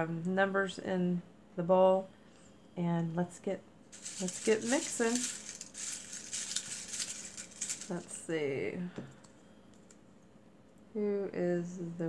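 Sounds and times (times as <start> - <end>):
paper slips rustling in bowl: 4.0 - 8.3.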